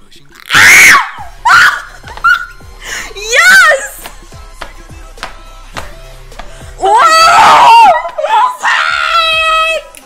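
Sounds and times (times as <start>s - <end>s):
women screaming: 0.5s - 2.6s, 3.2s - 4.0s, 6.8s - 9.9s.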